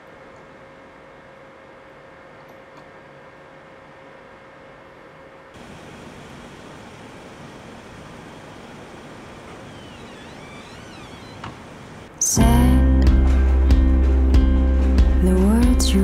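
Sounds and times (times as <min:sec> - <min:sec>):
distant traffic hum: 0:05.6 - 0:12.2
faint high gliding whistles: 0:08.6 - 0:12.1.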